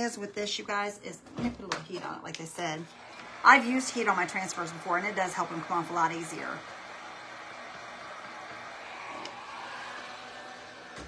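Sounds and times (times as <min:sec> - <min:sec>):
heat gun blowing air: 0:08.9 - 0:11.0.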